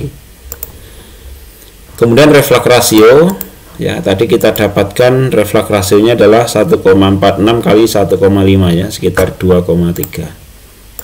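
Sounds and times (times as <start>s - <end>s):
low steady background hum: 0.0s - 11.0s
computer clicks: 0.5s - 0.8s, 3.2s - 3.6s, 4.4s - 4.7s, 10.0s - 10.2s.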